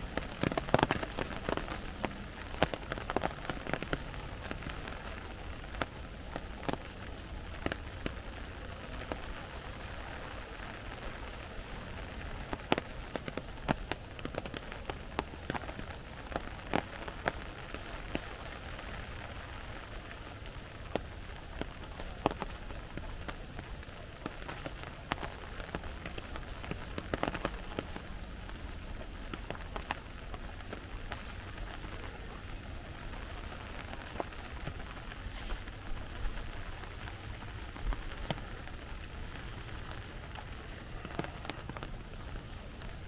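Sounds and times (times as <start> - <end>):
rain pattering on leaves: 0.0 - 43.0.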